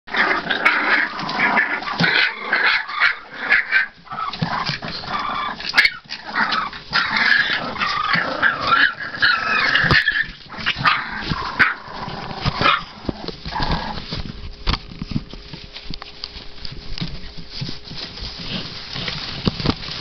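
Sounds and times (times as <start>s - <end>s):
puppies whining and yelping: 0.2s - 14.2s.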